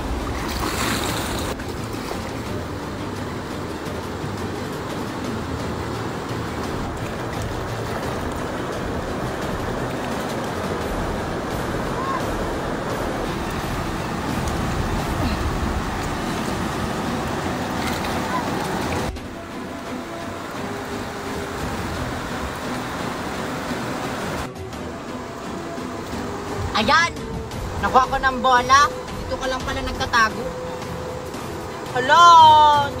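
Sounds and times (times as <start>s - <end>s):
river rushing over rapids: 0.0s - 33.0s.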